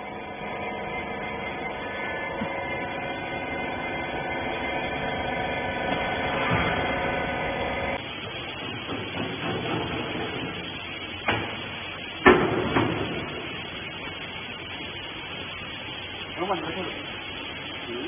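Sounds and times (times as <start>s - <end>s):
baler machine humming: 0.0s - 18.0s.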